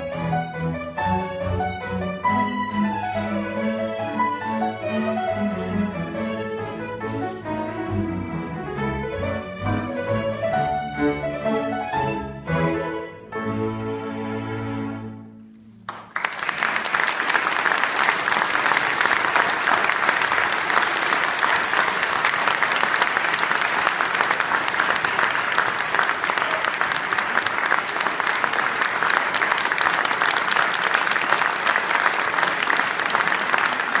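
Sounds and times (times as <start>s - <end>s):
orchestra music: 0.0s - 16.2s
audience applause: 15.8s - 34.0s.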